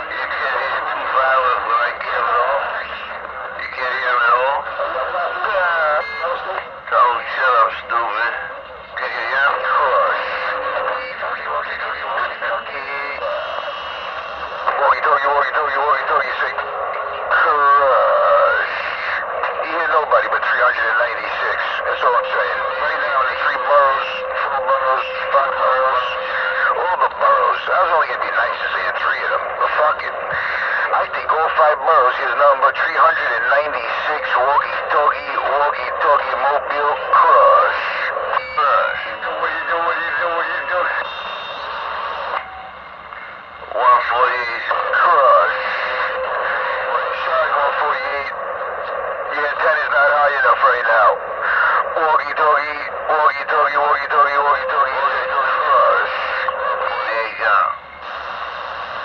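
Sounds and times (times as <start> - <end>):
radio noise floor: 0.0 - 59.0
radio voices chatter: 0.0 - 59.0.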